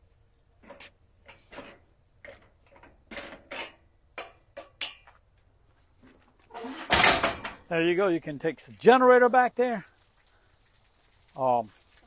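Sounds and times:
metal rack clattering down: 6.5s - 7.6s.

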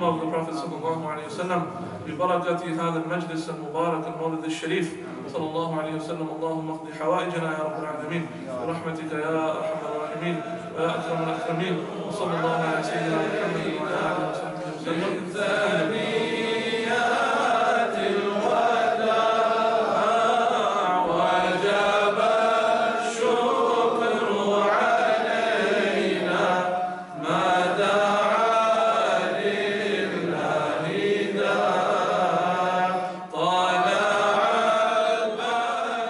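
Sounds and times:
devotional vocal chanting: 0.0s - 36.0s.

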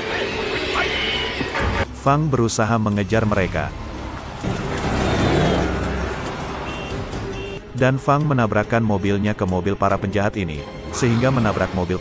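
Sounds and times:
road noise rushing: 0.0s - 8.8s, 10.6s - 12.0s
car engine revving: 3.2s - 7.6s.

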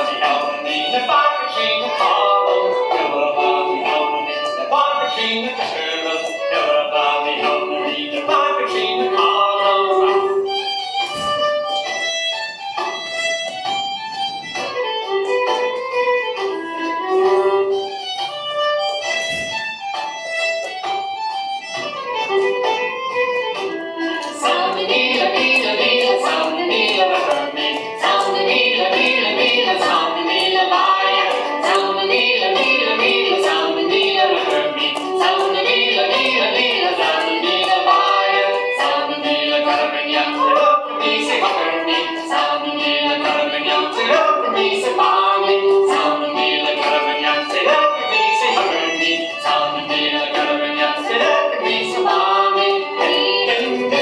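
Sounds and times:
fiddle dance tune: 0.0s - 54.0s.

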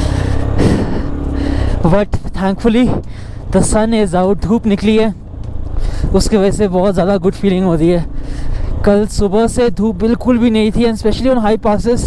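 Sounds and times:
wind rushing over microphone: 0.0s - 8.0s
motorcycle engine running: 0.0s - 12.0s.

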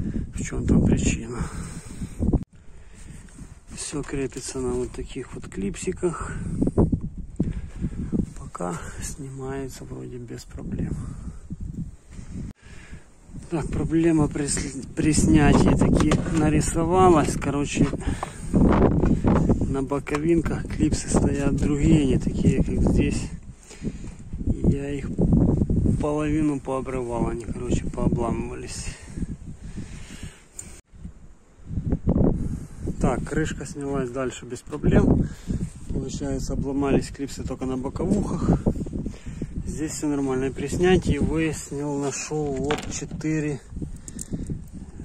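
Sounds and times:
wind rumbling on microphone: 0.0s - 45.0s
faint clicks: 44.0s - 44.6s.

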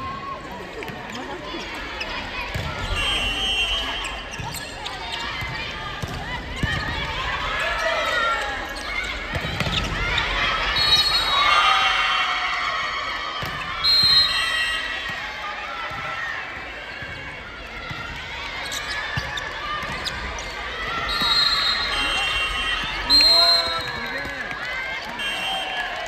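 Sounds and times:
players shouting: 1.5s - 26.0s
loud high whistle: 2.9s - 4.2s, 10.8s - 11.5s, 13.8s - 15.1s, 21.0s - 24.0s, 25.2s - 26.0s.

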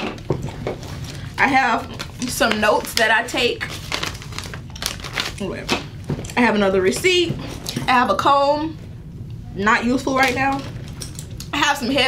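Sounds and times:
paper crinkling: 1.9s - 5.8s.

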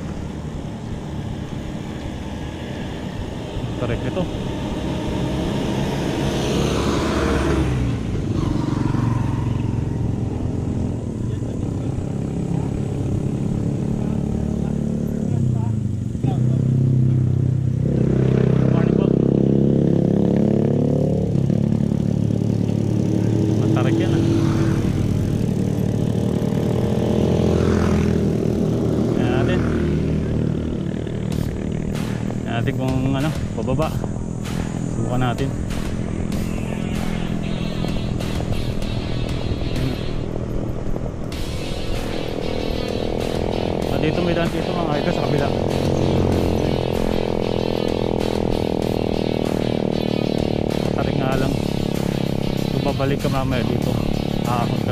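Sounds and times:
motorcycle engine running: 0.0s - 54.9s.

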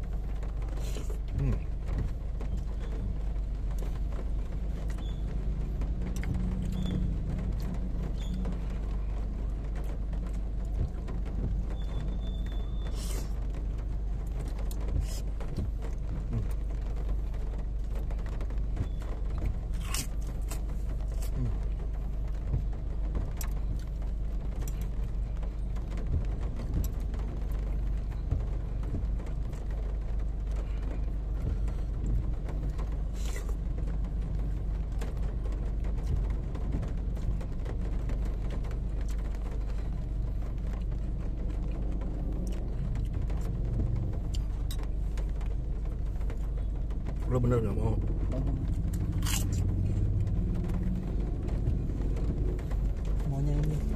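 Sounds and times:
car cabin rumble: 0.0s - 53.9s
soft eating sounds: 32.6s - 33.6s.

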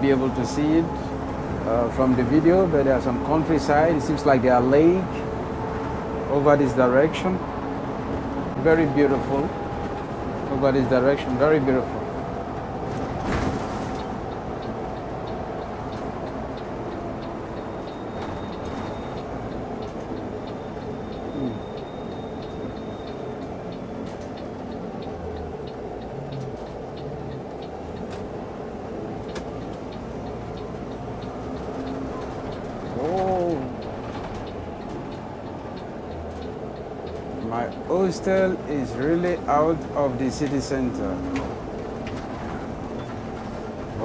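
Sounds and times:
bus engine and road noise: 0.0s - 44.0s.

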